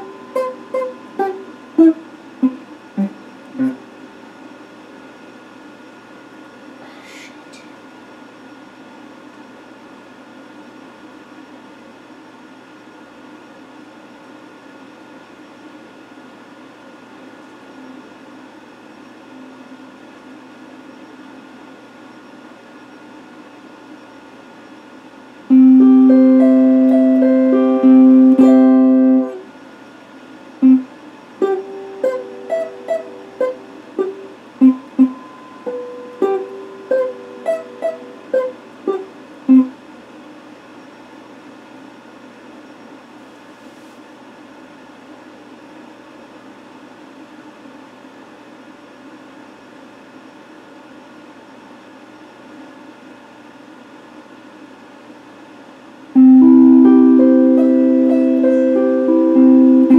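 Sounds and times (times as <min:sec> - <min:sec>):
electric guitar playing: 0:00.0 - 0:04.1, 0:25.5 - 0:29.5, 0:31.4 - 0:39.0, 0:56.2 - 0:59.9
steady low hiss: 0:00.0 - 0:48.4, 0:50.1 - 0:59.9.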